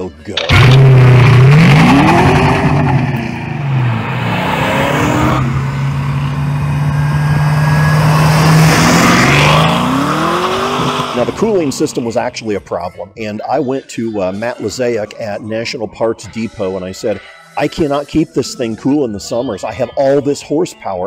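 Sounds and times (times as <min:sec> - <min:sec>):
car engine accelerating hard: 0:00.4 - 0:12.1.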